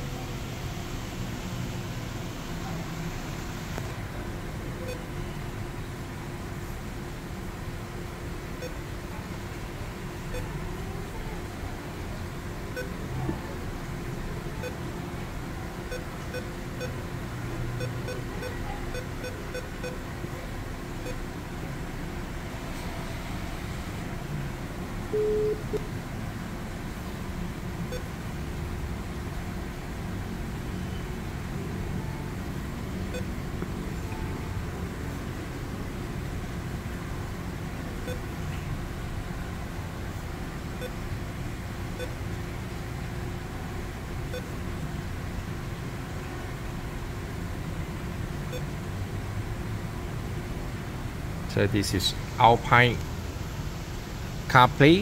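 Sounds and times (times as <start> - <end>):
short electronic beep: 25.1 - 25.9.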